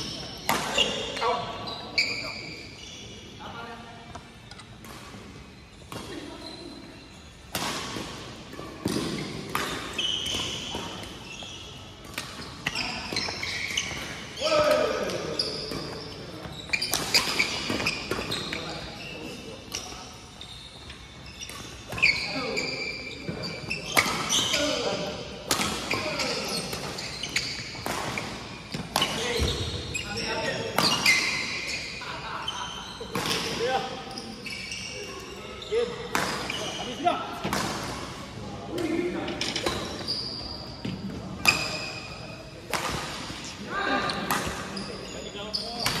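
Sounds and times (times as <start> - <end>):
shoes squeaking on floor: 0.0 - 3.5, 5.4 - 7.5, 8.5 - 25.3, 25.9 - 37.6, 38.8 - 42.5, 43.1 - 46.0
players' voices: 21.8 - 27.3, 28.7 - 46.0.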